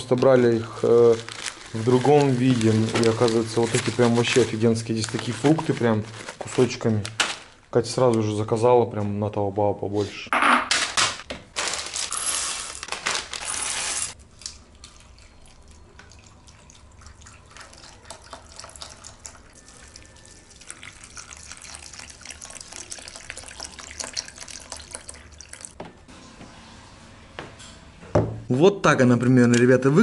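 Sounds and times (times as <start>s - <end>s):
cereal poured into a ceramic bowl: 12.1s - 12.8s
milk pouring onto cereal: 16.0s - 25.7s.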